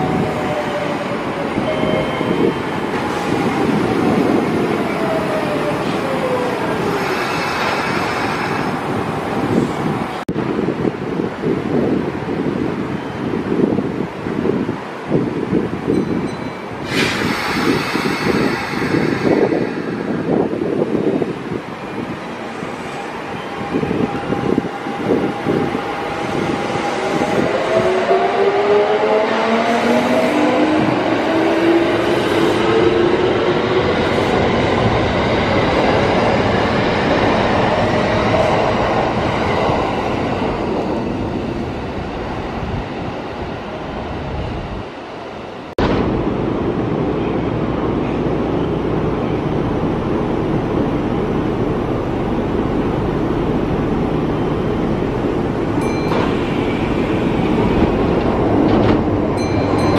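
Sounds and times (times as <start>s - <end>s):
train air hiss: 16.8s - 20.2s.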